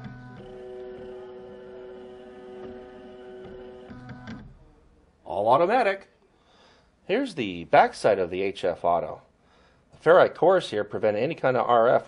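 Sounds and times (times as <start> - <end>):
stepper motors whining: 0.0 - 4.6.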